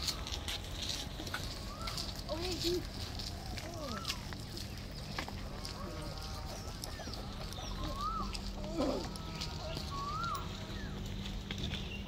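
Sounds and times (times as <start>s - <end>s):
low steady hum: 0.0s - 12.0s
bird whistled call: 1.6s - 2.1s, 7.6s - 8.4s, 9.9s - 10.9s
rough bird call: 5.8s - 11.0s.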